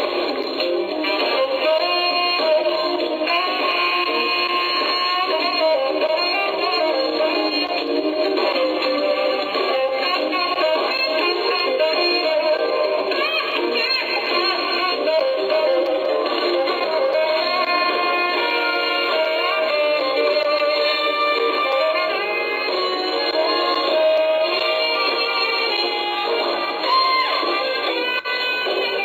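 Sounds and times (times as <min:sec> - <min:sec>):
saxophone lead: 0:00.0 - 0:29.0
smooth jazz band playing: 0:00.0 - 0:29.0.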